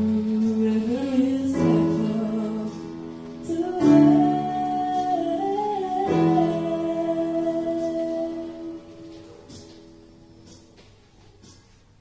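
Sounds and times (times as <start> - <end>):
slow instrumental backing track: 0.0 - 12.0
young woman singing long notes: 3.4 - 9.2.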